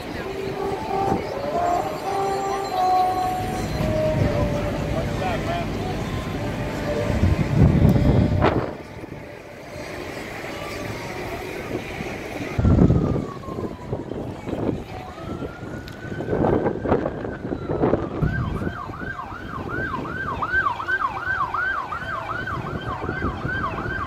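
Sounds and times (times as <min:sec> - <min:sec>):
siren wailing: 0:00.0 - 0:11.8, 0:12.6 - 0:24.0
crowd hubbub: 0:00.0 - 0:24.0
wind buffeting microphone: 0:06.2 - 0:09.5, 0:10.9 - 0:24.0.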